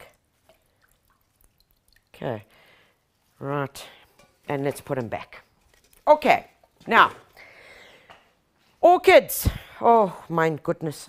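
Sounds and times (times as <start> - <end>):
water dripping into bucket: 0.0 - 2.9.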